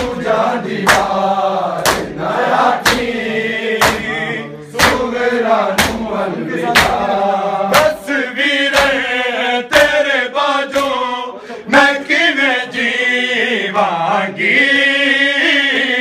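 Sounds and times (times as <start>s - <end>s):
men chanting in unison: 0.0s - 16.0s
hands slapping bare chests: 0.8s - 1.2s, 1.8s - 2.2s, 2.8s - 3.2s, 3.8s - 4.1s, 4.8s - 7.1s, 7.7s - 8.0s, 8.7s - 9.0s, 10.7s - 11.0s.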